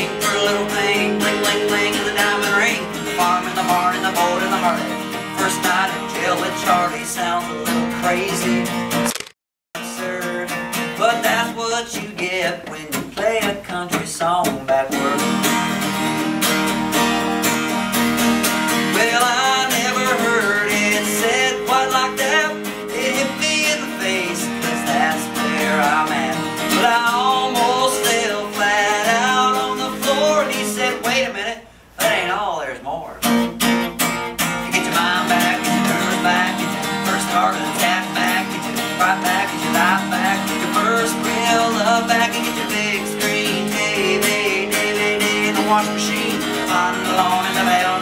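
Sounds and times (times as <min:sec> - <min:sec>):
man singing: 0:00.0 - 0:08.9, 0:09.8 - 0:15.7, 0:18.8 - 0:33.4, 0:34.6 - 0:48.0
acoustic guitar strummed: 0:00.0 - 0:09.1, 0:09.8 - 0:48.0.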